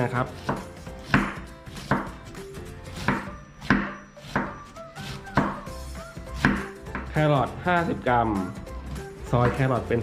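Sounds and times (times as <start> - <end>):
knife slicing cabbage on board: 0.0 - 7.2.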